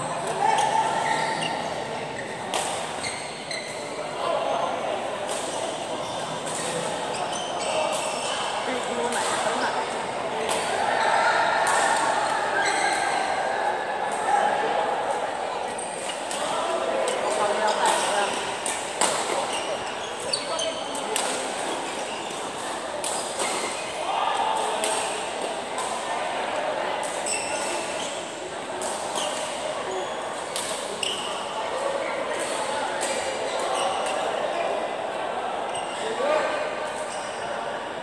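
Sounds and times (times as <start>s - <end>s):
players chattering: 0.0s - 38.0s
shoes squeaking on court floor: 0.1s - 4.2s, 5.2s - 10.1s, 12.4s - 13.2s, 17.1s - 24.0s, 27.1s - 34.7s.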